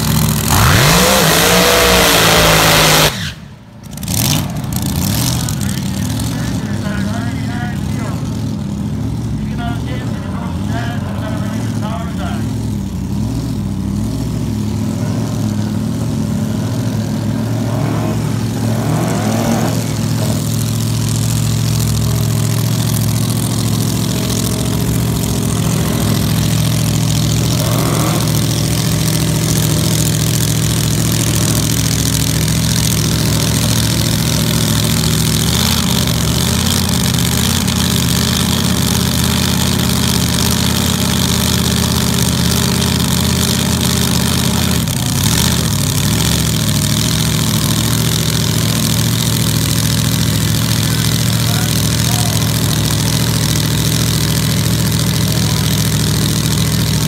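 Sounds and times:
dragster engine idling: 0.0s - 57.0s.

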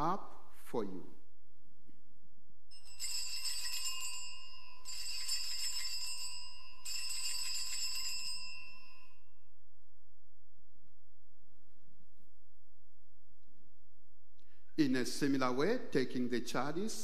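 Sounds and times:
altar bells jingling: 2.7s - 9.2s.

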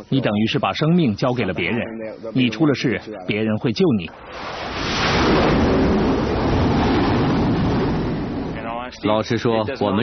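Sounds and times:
jet engines roaring: 4.1s - 9.0s.

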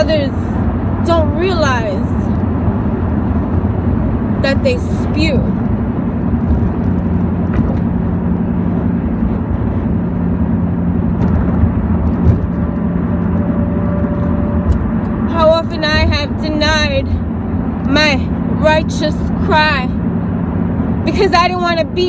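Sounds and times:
woman speaking: 0.0s - 2.3s, 4.4s - 5.6s, 15.3s - 17.2s, 17.9s - 20.0s, 21.1s - 22.0s
engine and road hum in car: 0.0s - 22.0s.

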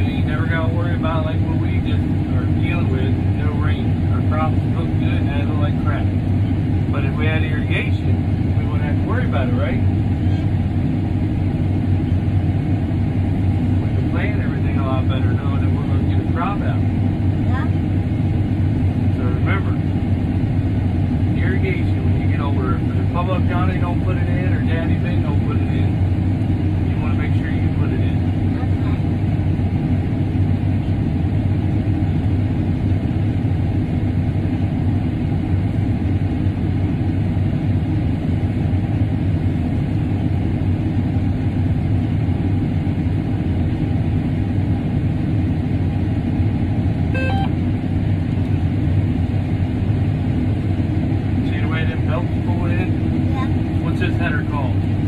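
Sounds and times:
farm machine engine droning: 0.0s - 55.0s.

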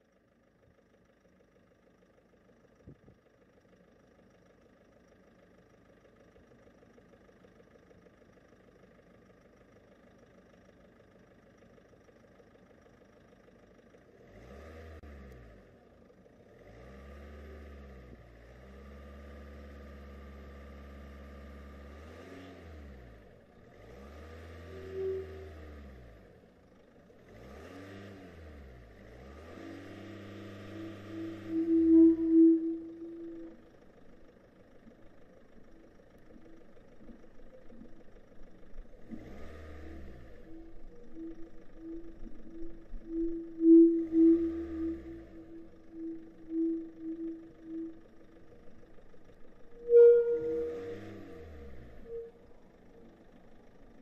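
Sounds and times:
cars passing: 27.3s - 33.6s, 39.0s - 48.8s
steady pitched tone: 30.6s - 39.1s, 39.8s - 54.0s.

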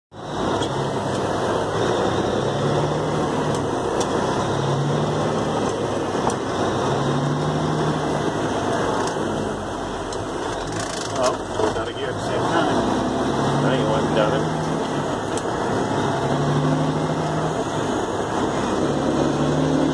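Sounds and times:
truck engine humming: 0.1s - 19.9s.

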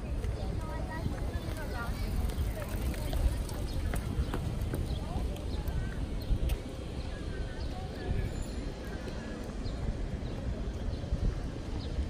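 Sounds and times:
faint voices of people passing: 0.0s - 12.0s.

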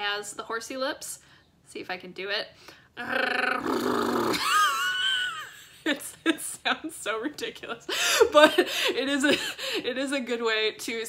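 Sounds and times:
person's lip trill: 3.0s - 4.5s.

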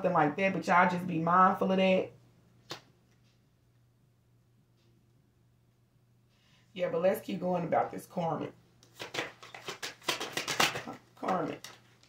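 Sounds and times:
cards being shuffled: 2.6s - 3.4s, 8.8s - 12.0s.

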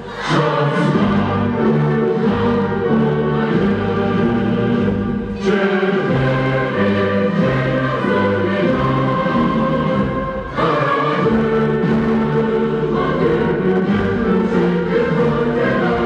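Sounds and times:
children singing in unison: 0.0s - 16.0s
instrumental accompaniment: 0.0s - 16.0s.

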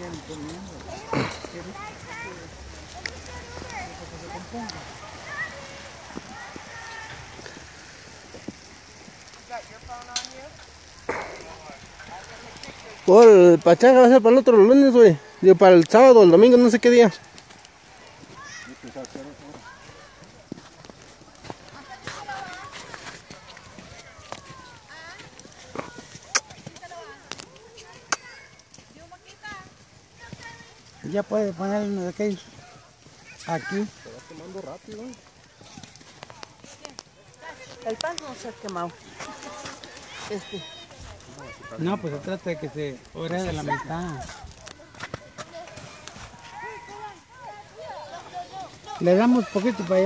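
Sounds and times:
faint voices talking: 0.0s - 50.0s.

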